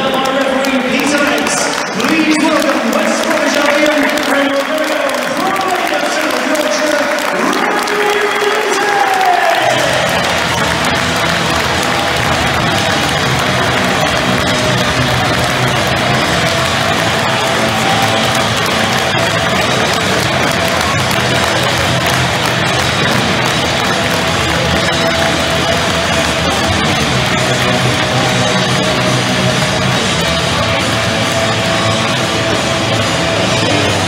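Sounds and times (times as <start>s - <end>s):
crowd applauding and cheering: 0.0s - 34.0s
music over loudspeakers: 0.0s - 34.0s.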